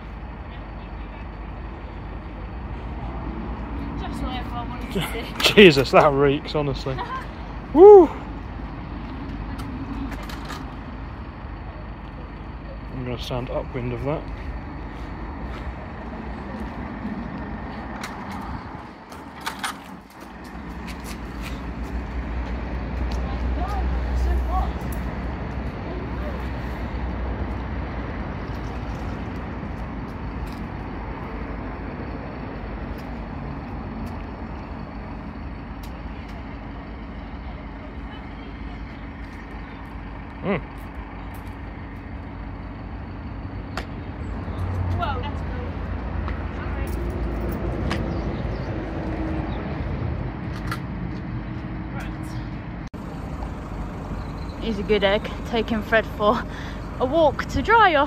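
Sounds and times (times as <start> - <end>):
large engine idling: 0.0 - 48.6, 49.5 - 58.0.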